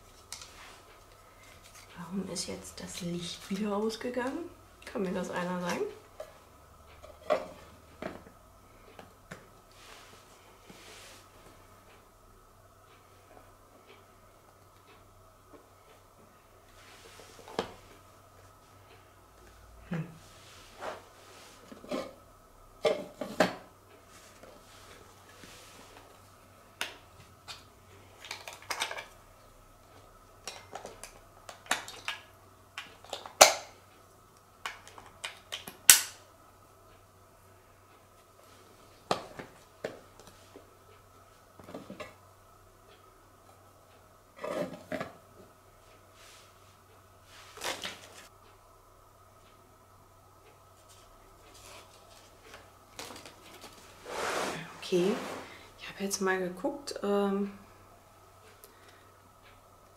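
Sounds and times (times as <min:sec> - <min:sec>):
soft rustle: 0:09.7 - 0:11.6, 0:20.2 - 0:21.8, 0:24.1 - 0:26.2, 0:46.1 - 0:48.3, 0:50.7 - 0:55.8.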